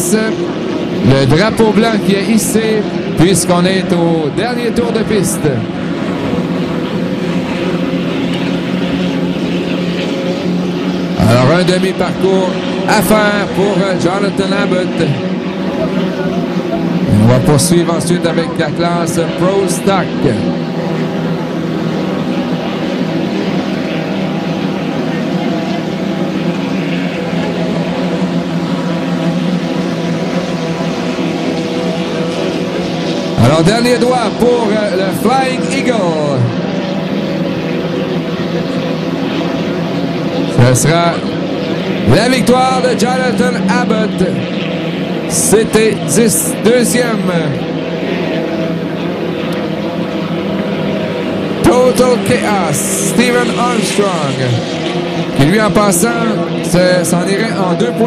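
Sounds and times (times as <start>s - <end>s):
racing boat engine at high revs: 0.0s - 58.0s
man's voice: 1.0s - 5.6s, 11.2s - 15.2s, 17.1s - 20.6s, 33.4s - 36.6s, 40.6s - 41.2s, 42.1s - 44.5s, 45.3s - 47.6s, 51.6s - 54.6s, 55.4s - 58.0s.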